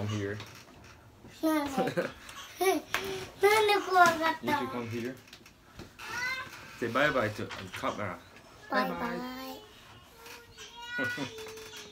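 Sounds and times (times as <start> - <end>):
young child's high drawn-out voice: 6.0 - 6.7.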